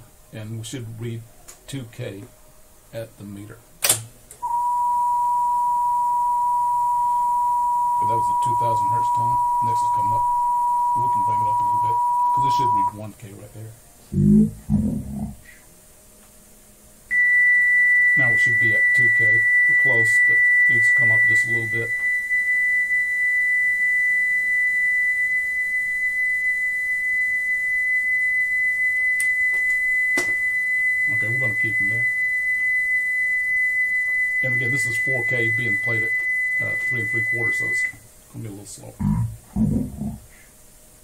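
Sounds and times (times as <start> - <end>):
steady pure test tone: 4.3 - 15.6, 17.1 - 40.4
short low-pitched bursts: 14.1 - 15.5, 38.9 - 40.3.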